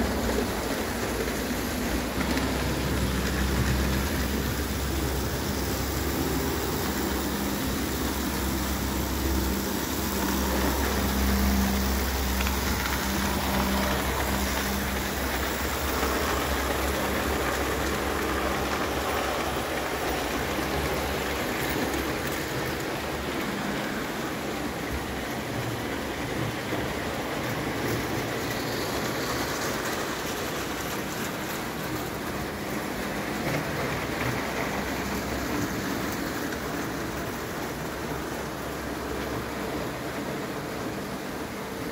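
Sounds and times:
toy train wheels rattling on track: 0.0 - 41.5.

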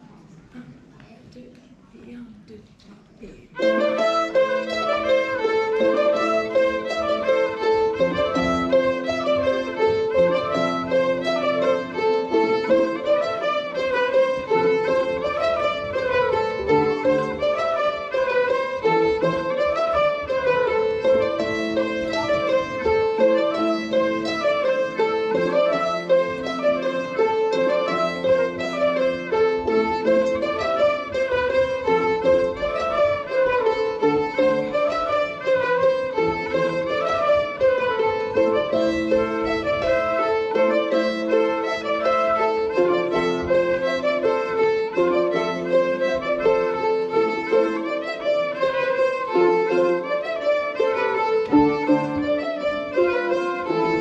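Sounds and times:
folk ensemble dance tune: 3.4 - 54.0.

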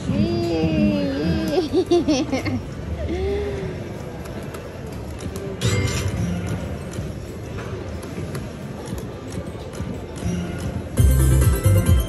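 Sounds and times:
casino background din: 0.0 - 12.0
electronic slot machine music: 9.4 - 12.0.

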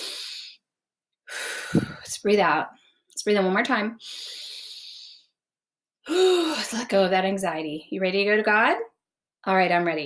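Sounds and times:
woman breathing in deeply: 0.0 - 0.6, 1.3 - 2.1, 4.0 - 5.3.

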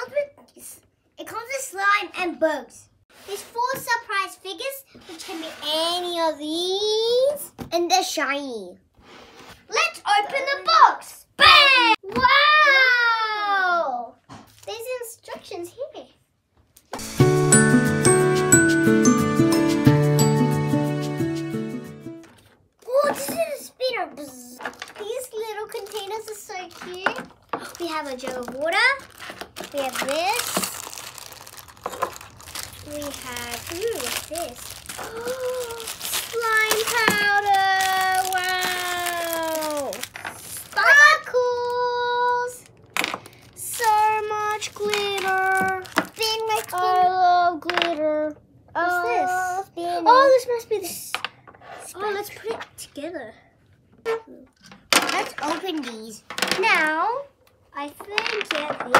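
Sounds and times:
young children exclaiming: 11.4 - 14.2, 35.0 - 40.0
plastic packets crinkling: 24.7 - 41.8, 42.5 - 47.0.

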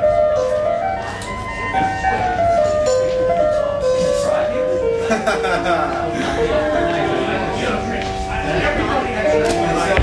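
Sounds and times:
electronic keyboard slow melody: 0.0 - 10.0.

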